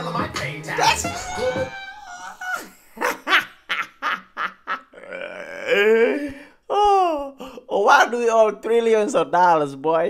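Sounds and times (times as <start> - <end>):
man laughing: 2.1 - 7.4.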